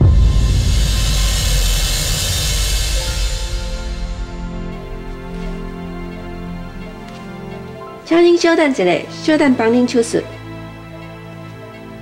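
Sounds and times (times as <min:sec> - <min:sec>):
deep rumbling boom with hiss: 0:00.0 - 0:07.1
dramatic score music: 0:00.0 - 0:12.0.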